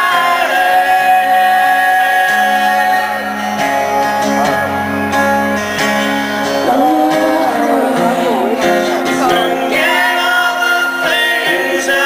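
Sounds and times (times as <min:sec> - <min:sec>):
acoustic guitar strummed: 0:00.0 - 0:12.0
person singing: 0:00.0 - 0:12.0.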